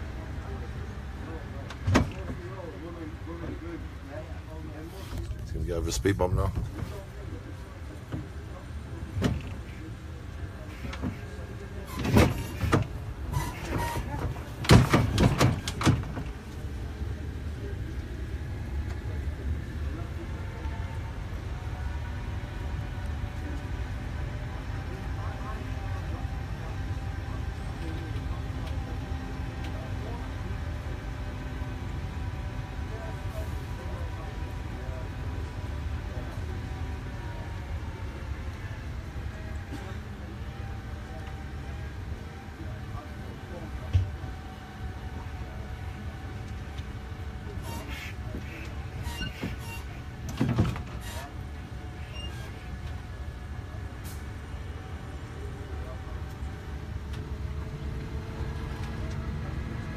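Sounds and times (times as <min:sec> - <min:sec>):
tractor engine rumbling: 0:00.0 - 0:59.9.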